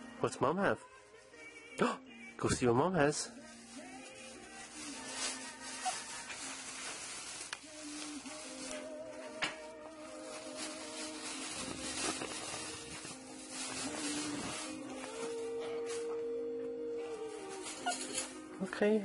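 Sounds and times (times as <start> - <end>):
quiet background music: 0.0 - 19.0
plastic bag crinkling: 3.1 - 16.2, 17.1 - 18.5.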